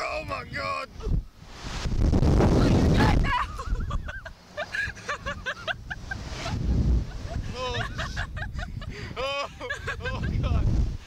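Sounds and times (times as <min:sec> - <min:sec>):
rushing air buffeting microphone: 0:00.9 - 0:11.0.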